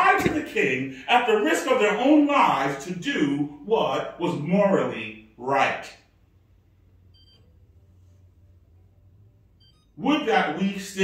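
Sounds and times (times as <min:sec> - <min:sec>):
low steady hum: 0:00.0 - 0:11.0
faint high-pitched beep: 0:07.1 - 0:07.6, 0:09.6 - 0:10.0.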